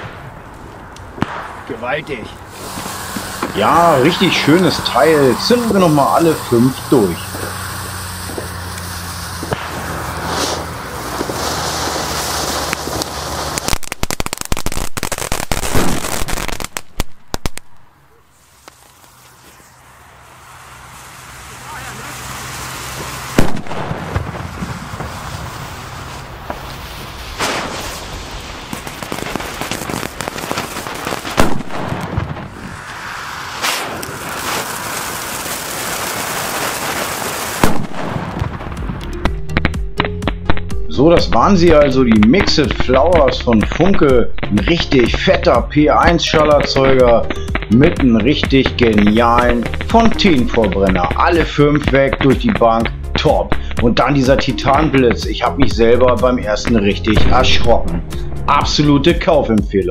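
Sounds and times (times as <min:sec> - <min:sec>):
firecracker bangs: 0:00.0 - 0:58.8
spark fountain hissing and crackling: 0:02.0 - 0:17.7, 0:18.3 - 0:39.2, 0:41.3 - 0:57.8.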